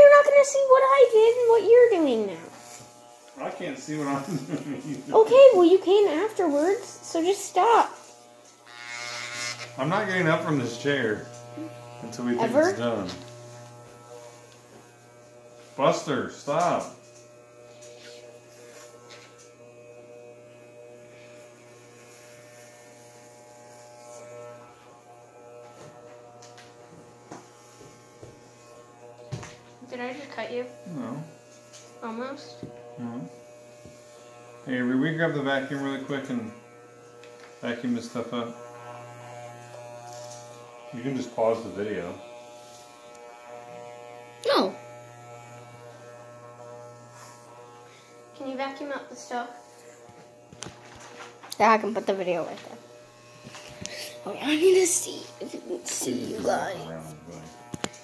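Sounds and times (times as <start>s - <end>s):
electric hair clippers buzzing: 0.0s - 58.0s.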